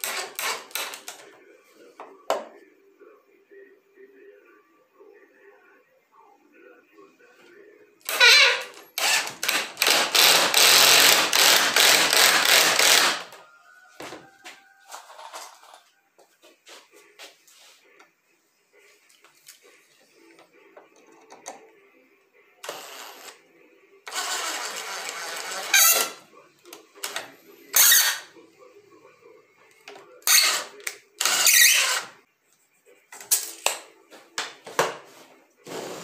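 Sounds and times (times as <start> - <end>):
cordless drill driving screws: 0.0 - 1.0, 9.0 - 13.3, 24.1 - 26.2, 30.3 - 32.1.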